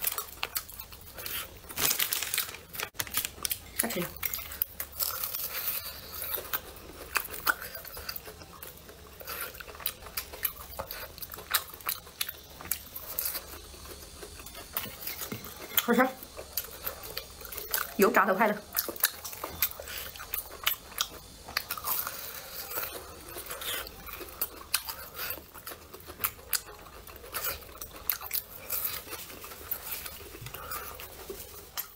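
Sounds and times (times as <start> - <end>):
chewing crunchy fried rice cake: 0.0 - 31.9.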